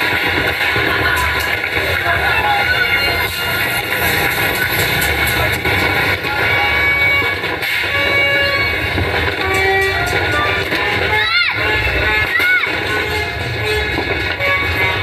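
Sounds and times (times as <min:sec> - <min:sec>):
firecracker pops: 0:00.0 - 0:02.3
street crowd noise: 0:00.0 - 0:15.0
horns sounding notes: 0:00.8 - 0:15.0.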